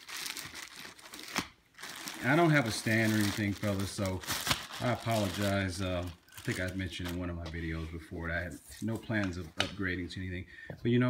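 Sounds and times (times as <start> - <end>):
sharp plastic crackle: 0.0 - 7.6
plastic bag crinkling: 0.0 - 7.8.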